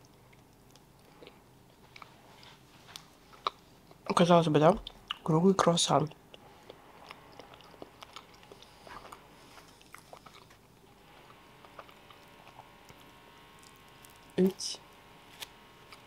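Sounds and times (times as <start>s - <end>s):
chewing pastry: 0.0s - 5.3s, 6.0s - 14.4s.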